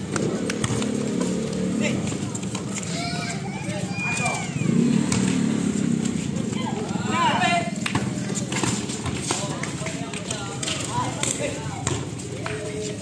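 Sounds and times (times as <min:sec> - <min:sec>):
basketball bouncing: 0:00.0 - 0:02.8, 0:05.0 - 0:06.5, 0:07.8 - 0:12.8
footsteps on concrete: 0:00.0 - 0:13.0.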